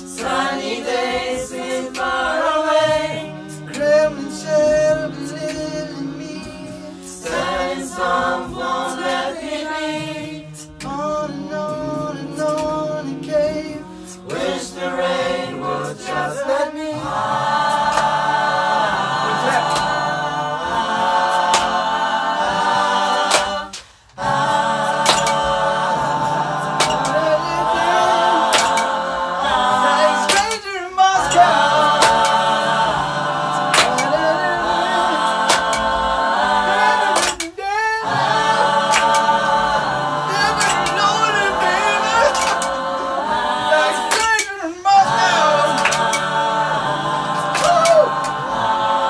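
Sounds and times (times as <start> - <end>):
mixed choir singing a cappella: 0.0 - 49.0.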